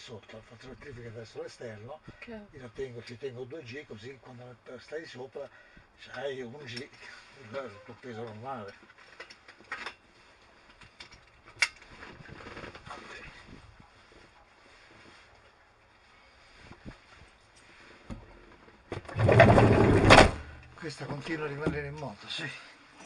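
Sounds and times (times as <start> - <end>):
hand rubbing camera rustle: 8.8 - 18.9.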